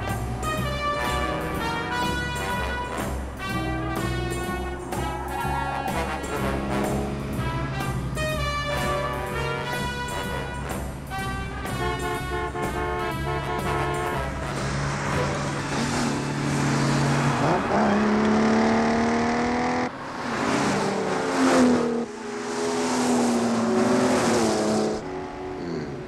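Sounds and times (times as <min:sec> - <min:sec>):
film music: 0:00.0 - 0:20.0, 0:20.7 - 0:26.0
car engines revving hard: 0:00.2 - 0:09.0, 0:14.2 - 0:26.0.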